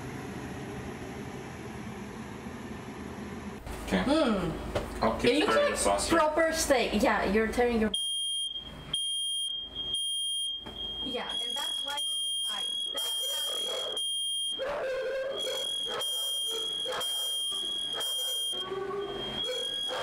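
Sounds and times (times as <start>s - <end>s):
high-pitched electronic alarm tone: 8.0s - 20.0s
voices talking: 11.0s - 13.8s.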